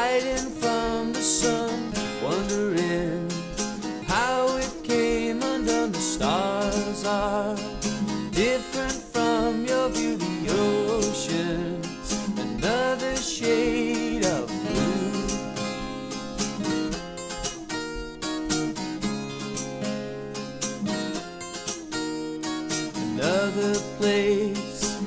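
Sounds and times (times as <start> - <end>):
man singing: 0.0 - 15.7, 23.1 - 25.0
strummed acoustic guitars: 0.0 - 25.0.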